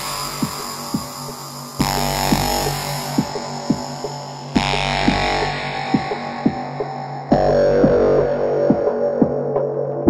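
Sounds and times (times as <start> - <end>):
drum and bass music: 0.0 - 10.0.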